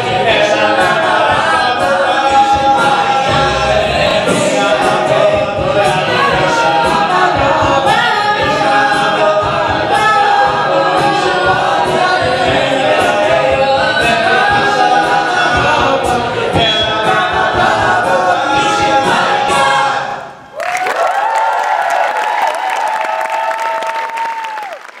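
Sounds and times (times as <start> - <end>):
vocal percussion beat: 0.0 - 20.0
a cappella group singing: 0.0 - 20.5
audience applause and cheering: 20.5 - 25.0.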